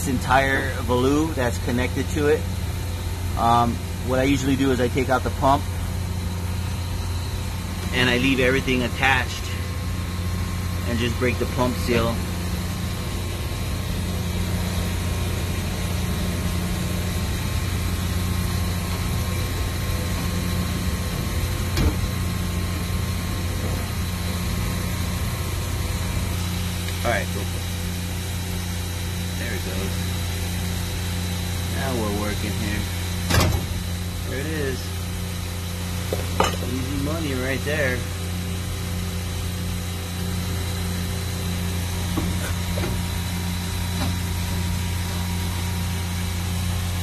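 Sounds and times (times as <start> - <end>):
high whine: 0.0 - 47.0
machinery hum: 0.0 - 47.0
metallic knocks on pump housing: 36.1 - 36.6.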